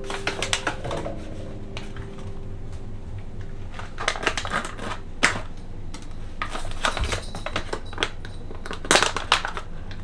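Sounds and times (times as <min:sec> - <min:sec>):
foil bag crinkling: 0:00.0 - 0:02.4, 0:03.6 - 0:05.6, 0:06.4 - 0:10.0.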